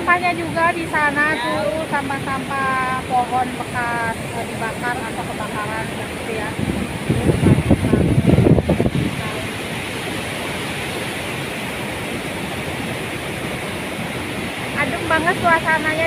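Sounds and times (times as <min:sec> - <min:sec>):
water rushing over a weir: 0:00.0 - 0:16.0
wind buffeting microphone: 0:00.0 - 0:16.0.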